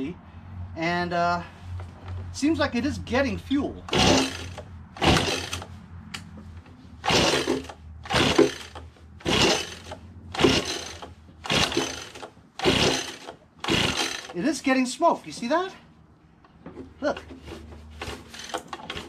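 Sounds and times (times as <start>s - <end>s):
small engine turning over: 3.9s - 5.7s, 7.0s - 14.4s, 18.0s - 19.0s
recoil pull-starter rasping: 3.9s - 6.3s, 7.0s - 14.4s, 17.3s - 19.0s.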